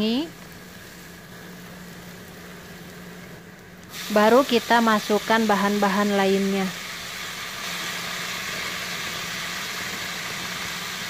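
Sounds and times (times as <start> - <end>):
onion frying in a pan: 0.0 - 11.0.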